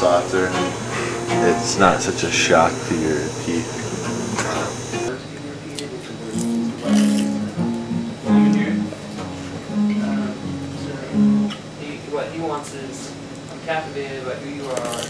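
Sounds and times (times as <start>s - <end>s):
acoustic guitar notes: 0.0s - 5.1s, 6.3s - 11.8s.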